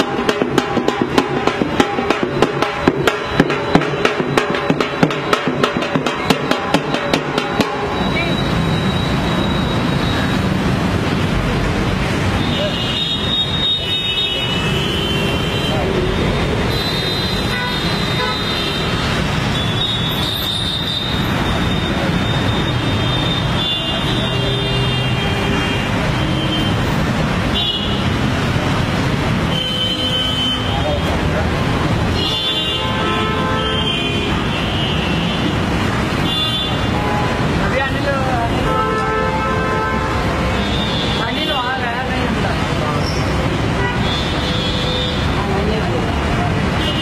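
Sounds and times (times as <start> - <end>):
traffic running: 0.0 - 47.0
vehicle horns honking: 12.4 - 28.2, 29.3 - 31.1, 32.1 - 37.7, 38.4 - 41.8, 43.6 - 45.4, 46.8 - 47.0
people talking: 37.6 - 38.8, 41.2 - 43.2, 45.2 - 47.0.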